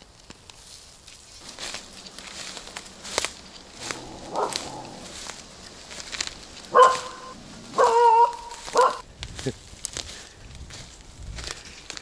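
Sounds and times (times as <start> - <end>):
small dog barking: 3.8 - 5.0, 6.7 - 9.0.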